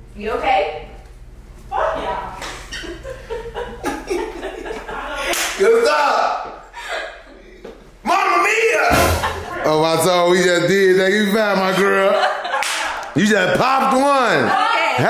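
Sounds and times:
people laughing: 2.5s - 7.8s, 8.9s - 10.2s, 11.1s - 15.0s
hand slap: 5.3s - 5.6s, 12.6s - 13.1s.

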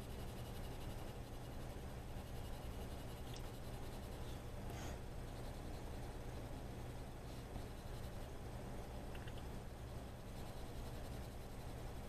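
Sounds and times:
pencil scratching on paper: 0.0s - 8.4s, 9.7s - 12.0s
steady low hum: 0.0s - 12.0s.

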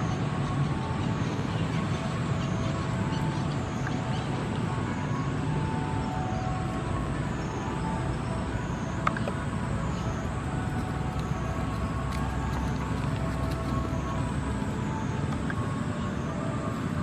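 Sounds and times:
faint steady hum: 0.0s - 17.0s
low outdoor rumble: 0.0s - 17.0s.

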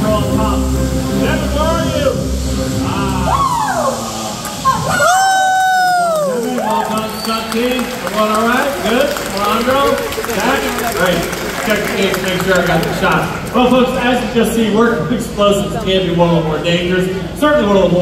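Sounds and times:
low rumble: 0.0s - 6.2s
performers shouting: 2.8s - 11.5s.

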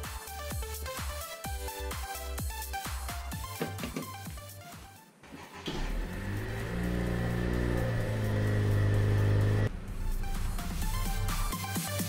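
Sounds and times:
music: 0.0s - 12.0s
car engine running: 5.3s - 12.0s.

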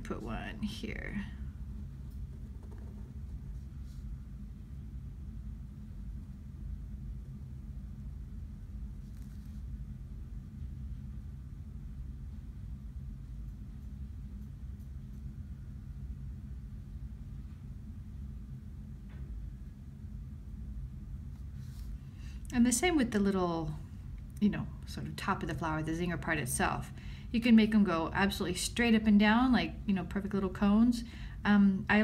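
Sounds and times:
low background rumble: 0.0s - 32.0s.

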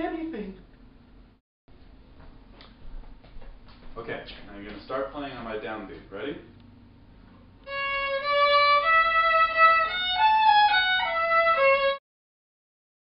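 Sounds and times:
solo violin melody: 7.6s - 12.0s.

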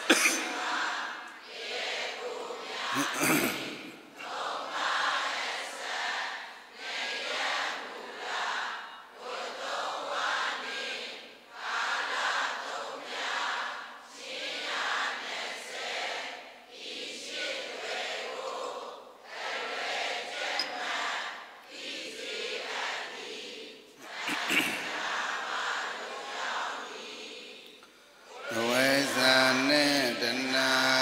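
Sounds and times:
group chanting in unison: 0.0s - 31.0s.

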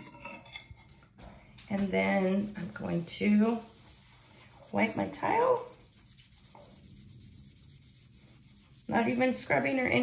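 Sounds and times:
cloth rubbing on ceramic tile: 1.8s - 10.0s.

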